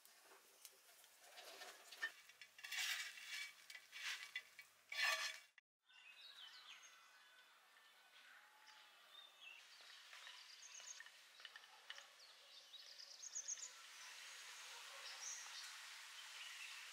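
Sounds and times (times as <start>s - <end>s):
birds chirping: 5.9s - 16.9s.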